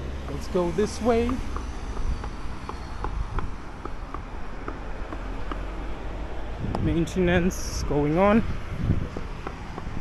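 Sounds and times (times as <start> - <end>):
low street rumble: 0.0 - 10.0.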